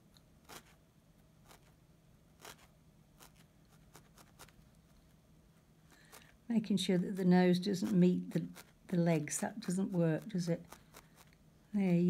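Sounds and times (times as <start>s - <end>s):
low steady hum: 0.0s - 12.0s
felting needle stabbing wool: 1.4s - 4.7s, 5.9s - 12.0s.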